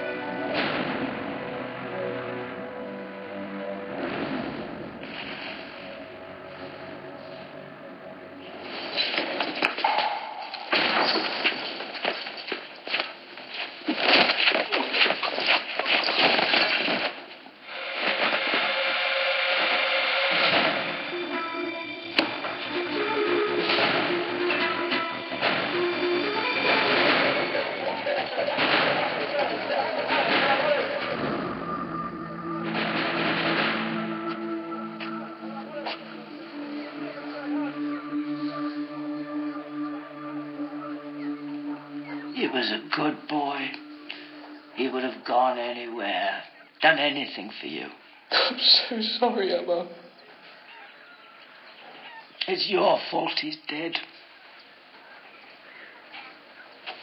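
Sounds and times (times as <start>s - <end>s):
dramatic score music: 0.0s - 12.1s, 17.7s - 46.7s
rapid knocks and crashes: 10.7s - 18.8s, 26.6s - 31.4s, 32.6s - 34.3s.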